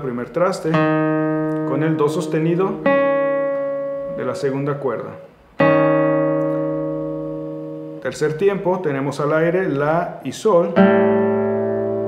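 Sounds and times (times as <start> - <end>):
classical guitar chord ringing: 0.7 - 8.4, 10.7 - 12.0.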